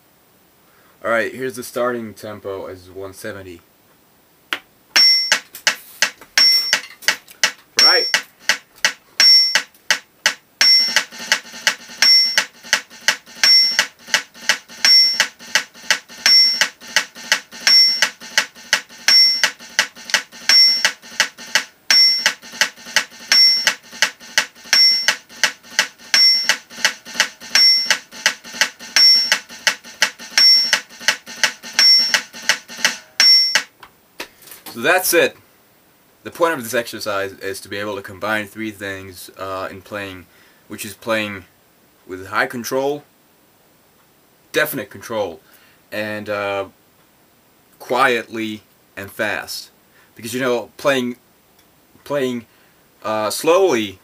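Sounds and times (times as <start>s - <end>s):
higher metronome beep: 5.0s - 5.5s, 6.4s - 6.9s, 7.8s - 8.3s, 9.2s - 9.7s, 10.6s - 11.1s, 12.0s - 13.9s, 14.8s - 15.4s, 16.2s - 16.8s, 17.6s - 22.4s, 23.2s - 33.7s
metronome click: 6.4s - 33.7s.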